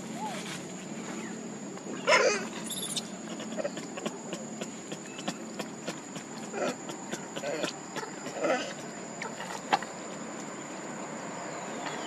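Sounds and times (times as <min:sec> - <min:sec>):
monkey call: 0:01.2 - 0:10.0.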